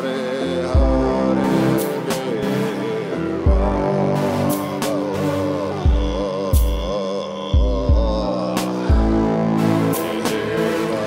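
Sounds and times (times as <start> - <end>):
drone-like music chords: 0.0 - 11.0
deep low beats: 0.7 - 2.6, 3.3 - 11.0.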